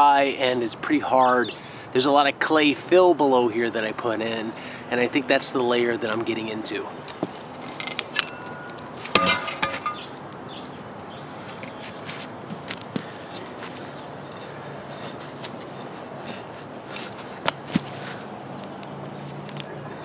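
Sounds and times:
metal garden tools clinking: 0:07.6 - 0:10.2, 0:13.2 - 0:17.3
fork scraping dry clay: 0:13.2 - 0:17.4.

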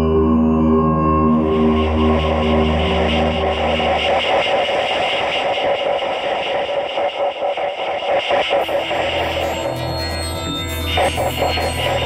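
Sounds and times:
steady low drone: 0:00.0 - 0:12.0.

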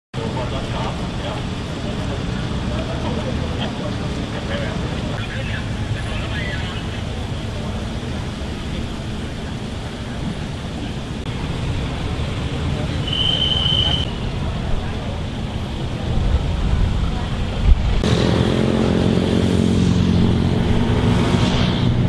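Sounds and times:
bus engine and road noise: 0:00.1 - 0:22.0
people chattering: 0:00.2 - 0:20.8.

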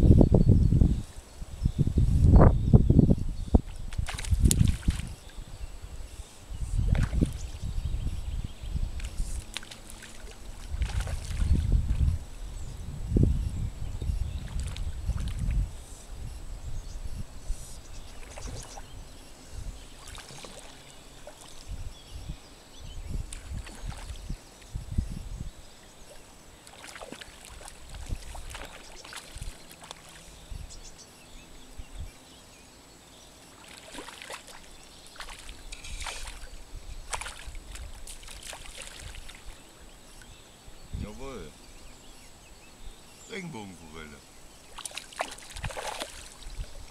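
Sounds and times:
wind buffeting microphone: 0:00.0 - 0:20.5, 0:21.4 - 0:26.2, 0:27.5 - 0:29.6, 0:35.2 - 0:43.1, 0:45.2 - 0:46.9
waves lapping at shore: 0:09.0 - 0:11.6, 0:19.8 - 0:21.7, 0:23.3 - 0:24.7, 0:25.9 - 0:30.4, 0:33.3 - 0:40.3, 0:43.3 - 0:46.9.

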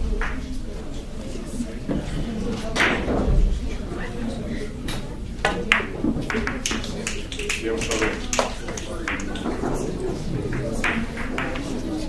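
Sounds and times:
billiard balls clacking: 0:00.0 - 0:00.6, 0:04.9 - 0:12.0
murmured talk: 0:00.0 - 0:12.0.

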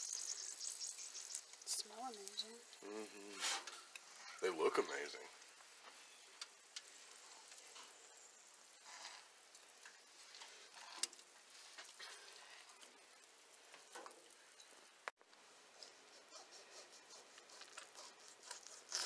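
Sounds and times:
grease sizzling on foil: 0:00.0 - 0:15.1, 0:15.8 - 0:19.0.

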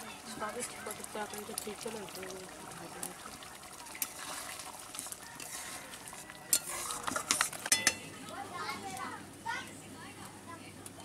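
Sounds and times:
metal spatula scraping a pan: 0:04.0 - 0:08.0
spatula clinking on pan: 0:06.5 - 0:08.1.

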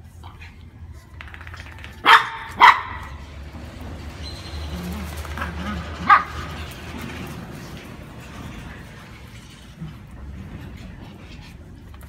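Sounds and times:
small dog barking: 0:02.0 - 0:03.2.

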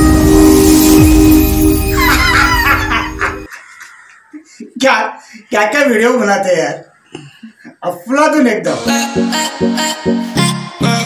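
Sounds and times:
bright music: 0:00.0 - 0:03.5, 0:08.8 - 0:11.0.

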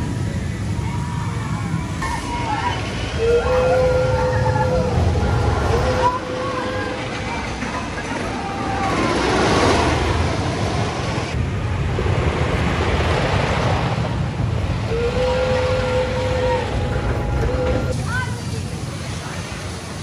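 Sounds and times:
roller coaster rumbling on track: 0:00.0 - 0:20.0.

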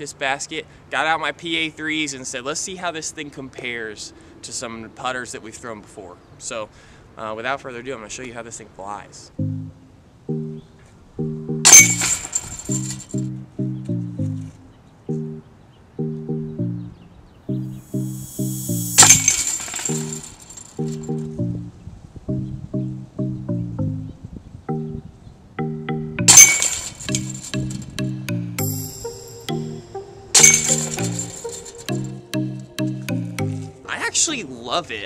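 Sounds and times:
music with plucked bass: 0:09.4 - 0:12.0, 0:12.8 - 0:19.3, 0:20.8 - 0:25.0, 0:25.6 - 0:26.5, 0:27.1 - 0:33.9
disc striking metal chains: 0:11.7 - 0:13.2, 0:18.9 - 0:21.0, 0:26.3 - 0:28.0, 0:30.4 - 0:32.0.

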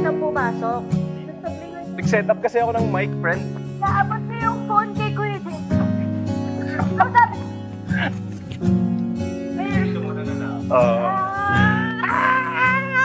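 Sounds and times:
acoustic guitar chords: 0:00.0 - 0:13.0
person speaking: 0:09.6 - 0:13.0
person singing: 0:10.7 - 0:13.0.

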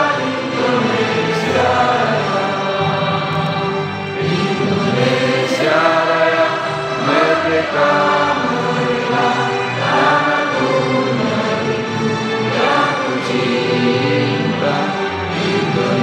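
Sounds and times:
choir singing slow song: 0:00.0 - 0:16.0.

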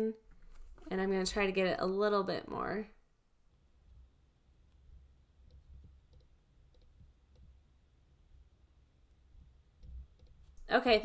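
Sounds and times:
computer mouse clicks: 0:04.6 - 0:07.6, 0:09.8 - 0:10.6.

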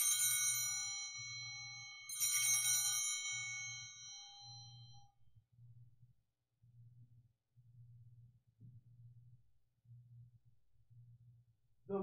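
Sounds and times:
small handbells ringing: 0:00.0 - 0:05.1.

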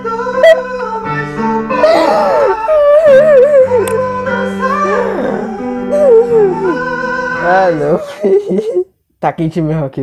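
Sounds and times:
piano chords: 0:00.0 - 0:08.3
high voice singing: 0:00.0 - 0:08.8.

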